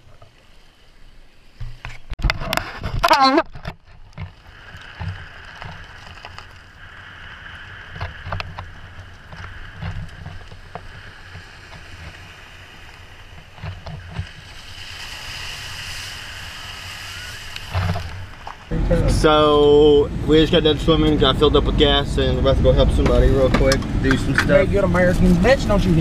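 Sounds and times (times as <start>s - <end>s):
stones clicking under tyres: 1.6s - 6.9s, 7.8s - 18.7s
suspension rumbling: 2.8s - 26.0s
tyres hissing through water: 14.3s - 18.4s.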